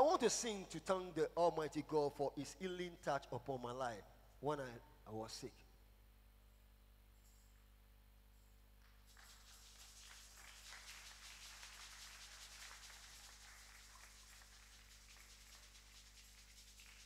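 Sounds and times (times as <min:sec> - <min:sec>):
low electrical hum: 0:00.0 - 0:17.0
faint hiss: 0:08.8 - 0:17.0.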